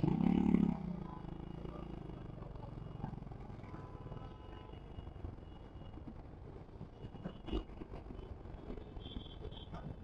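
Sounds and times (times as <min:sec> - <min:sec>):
motorcycle engine revving: 0:00.0 - 0:01.5.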